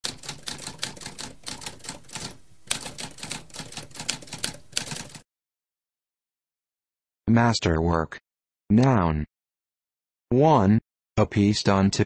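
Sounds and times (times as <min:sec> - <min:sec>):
mechanical typewriter typing: 0:00.0 - 0:05.2.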